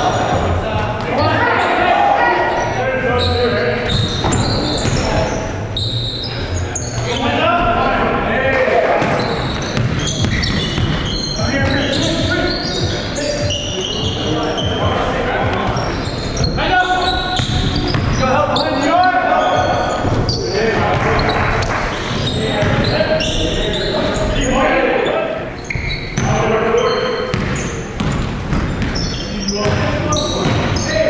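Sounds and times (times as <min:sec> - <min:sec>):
players shouting in gym: 0:00.0 - 0:05.4
basketball bouncing on wooden floor: 0:09.0 - 0:12.3, 0:27.3 - 0:30.8.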